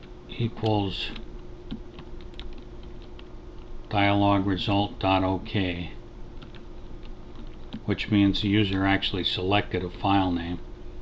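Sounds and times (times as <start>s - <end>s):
keyboard typing clicks: 0.6s - 3.7s, 6.4s - 7.9s.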